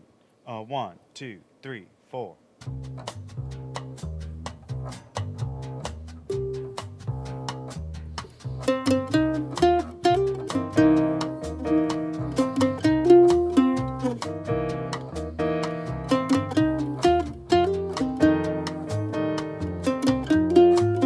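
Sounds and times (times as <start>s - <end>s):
backing track bass and drums: 2.6s - 21.0s
mandolin picking melody: 3.8s - 21.0s.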